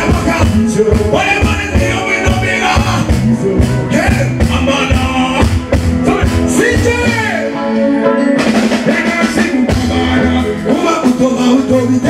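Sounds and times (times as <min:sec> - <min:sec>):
bass guitar: 0:00.0 - 0:12.0
drum kit beat: 0:00.0 - 0:12.0
person singing: 0:00.0 - 0:12.0.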